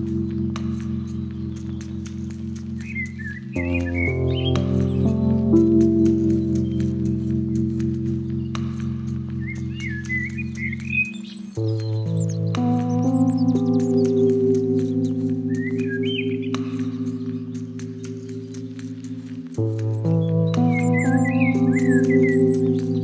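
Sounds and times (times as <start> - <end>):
ambient meditation music: 0.0 - 23.0
songbird calls: 0.0 - 23.0.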